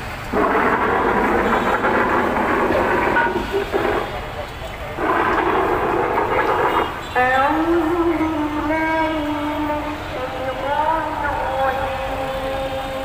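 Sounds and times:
crowd of voices: 0:00.0 - 0:13.0
traffic: 0:00.0 - 0:13.0.

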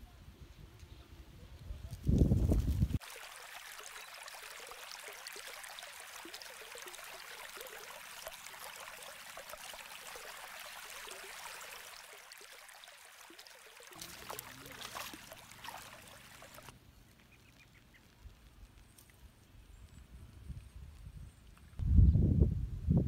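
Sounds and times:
river water lapping and trickling: 0:02.1 - 0:21.8
low rumble on microphone: 0:20.2 - 0:23.0.

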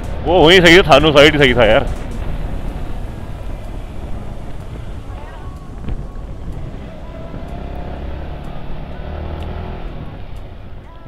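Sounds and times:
road rumble: 0:00.0 - 0:11.0.

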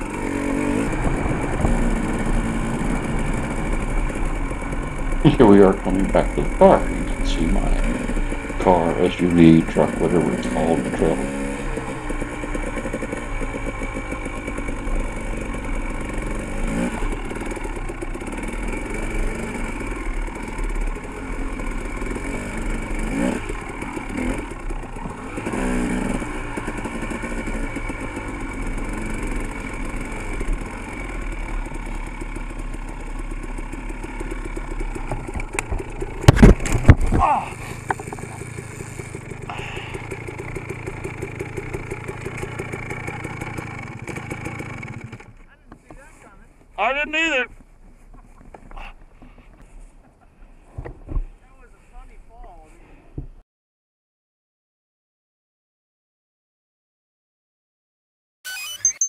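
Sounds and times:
dirt bike engine: 0:00.0 - 0:53.0.

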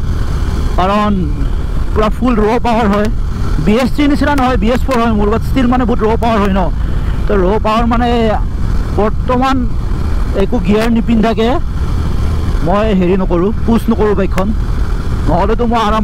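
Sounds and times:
wind and motorcycle engine rumble: 0:00.0 - 0:16.0
man talking: 0:00.8 - 0:09.7, 0:10.3 - 0:11.7, 0:12.6 - 0:14.6, 0:15.2 - 0:16.0.

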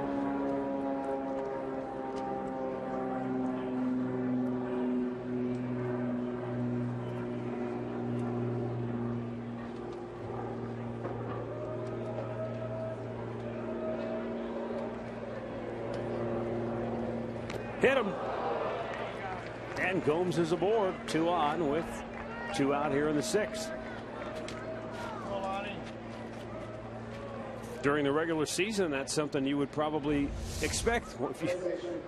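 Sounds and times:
crowd voices: 0:03.0 - 0:27.8, 0:30.0 - 0:32.0
droning hum: 0:30.0 - 0:32.0.

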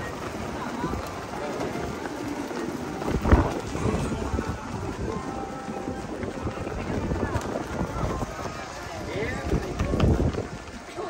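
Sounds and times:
footsteps on wooden footbridge: 0:00.0 - 0:11.0.

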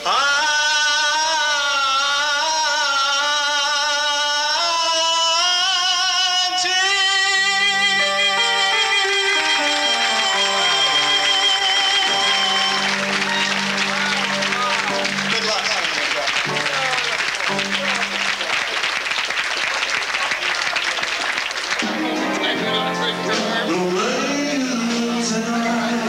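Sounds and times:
man singing with vibrato: 0:00.0 - 0:15.7, 0:21.8 - 0:26.0
instrumental backing track: 0:07.4 - 0:18.5, 0:21.8 - 0:26.0.

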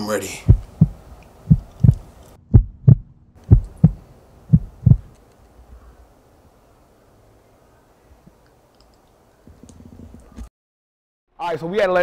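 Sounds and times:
heartbeat thumps: 0:00.4 - 0:05.1.

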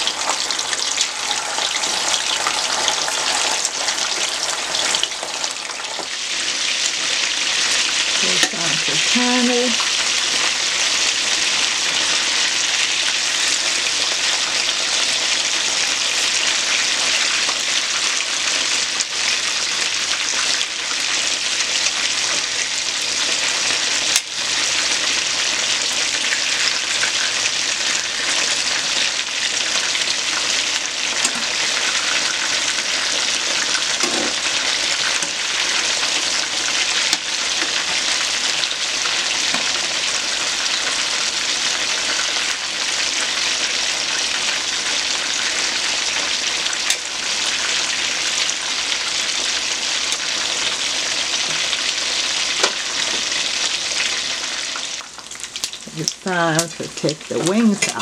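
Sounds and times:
wings sizzling in hot oil: 0:00.0 - 0:58.0.

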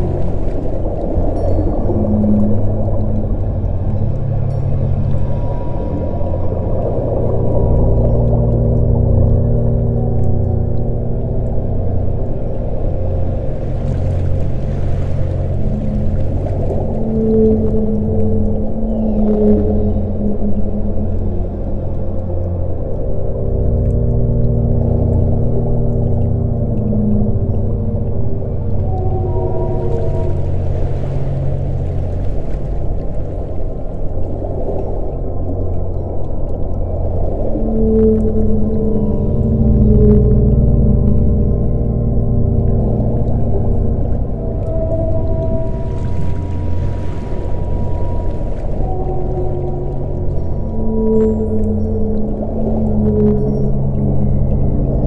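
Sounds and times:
low drone: 0:00.0 - 0:55.0
whale calls: 0:00.0 - 0:55.0.

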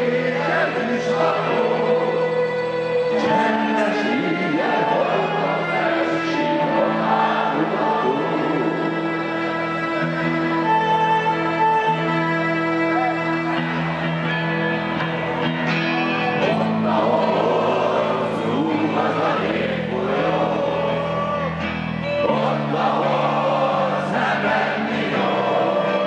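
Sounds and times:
voices singing in chorus: 0:00.0 - 0:09.4, 0:16.3 - 0:26.0
rock band playing: 0:00.0 - 0:26.0.

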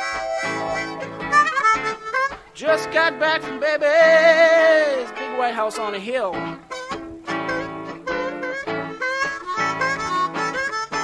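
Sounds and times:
blues harmonica with bent notes: 0:00.0 - 0:11.0.

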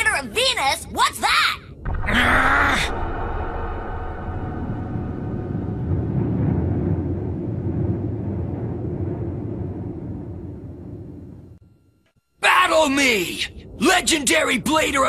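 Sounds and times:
ominous drone score: 0:01.7 - 0:09.2
rush of noise: 0:01.7 - 0:09.9.

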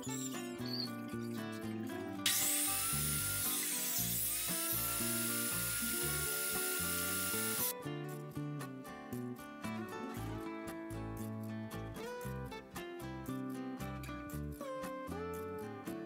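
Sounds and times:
background music: 0:00.0 - 0:16.0
table saw cutting wood: 0:02.3 - 0:07.7.

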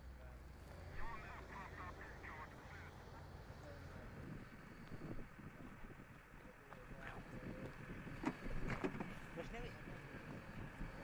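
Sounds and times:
steady low rumble: 0:00.7 - 0:11.0
thin radio voice: 0:00.9 - 0:03.3.

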